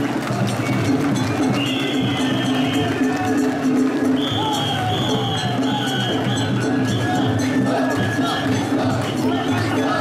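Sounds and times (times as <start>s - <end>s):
crowd voices: 0.0s - 10.0s
festival music with high held notes: 0.0s - 10.0s.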